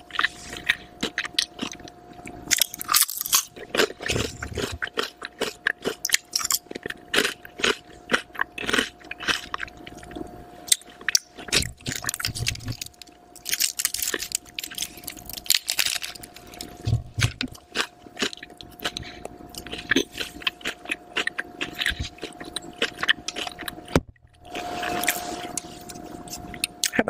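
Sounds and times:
chewing crunchy potato chips: 0.0s - 27.0s.

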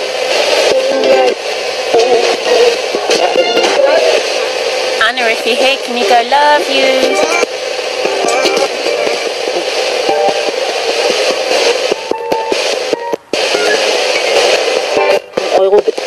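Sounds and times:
radio static hiss: 0.0s - 16.0s
scraps of radio station audio: 0.0s - 16.0s.

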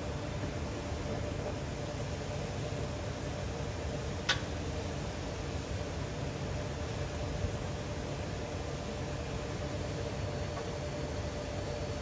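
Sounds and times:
foundry machinery humming: 0.0s - 12.0s.

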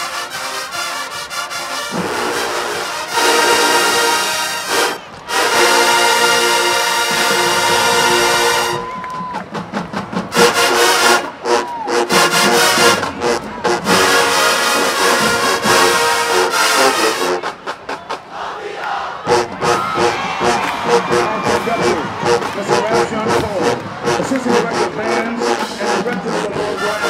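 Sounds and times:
marching band brass and drums: 0.0s - 27.0s
crowd cheering: 1.9s - 27.0s.

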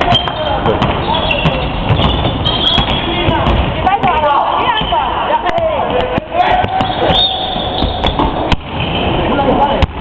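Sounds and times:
basketball dribbling: 0.0s - 8.9s.

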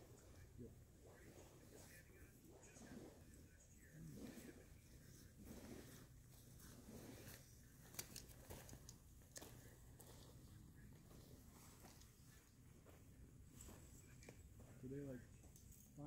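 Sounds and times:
soft clicks and rustles: 0.0s - 16.0s.

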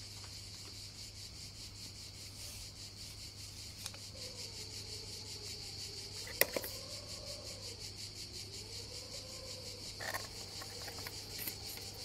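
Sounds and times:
insects chirring: 0.0s - 12.0s
hand rubbing metal tin lid: 6.3s - 6.8s, 10.0s - 12.0s.

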